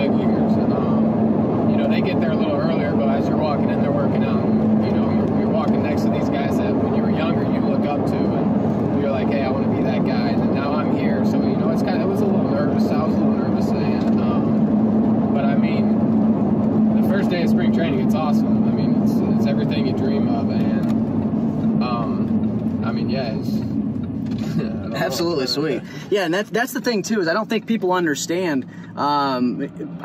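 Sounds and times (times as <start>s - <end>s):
car engine and road drone: 0.0s - 30.0s.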